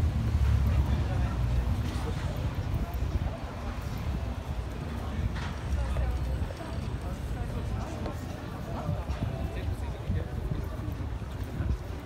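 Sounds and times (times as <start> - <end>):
passers-by talking: 0.0 - 12.0
traffic rumble: 0.0 - 12.0
wind: 0.0 - 12.0
footsteps on stone paving: 1.7 - 12.0.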